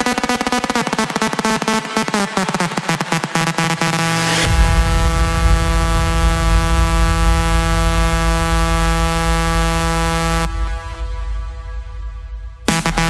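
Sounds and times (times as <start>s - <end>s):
buzzy synth note: 0.0s - 13.0s
deep rumbling bass: 4.4s - 13.0s.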